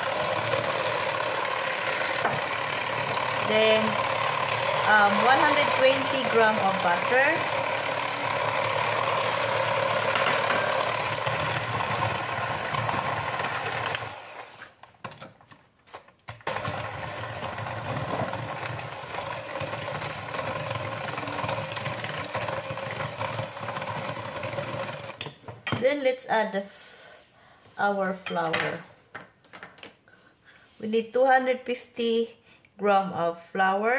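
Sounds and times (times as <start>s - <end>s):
electric hand mixer running: 0.0s - 14.8s, 16.4s - 25.2s.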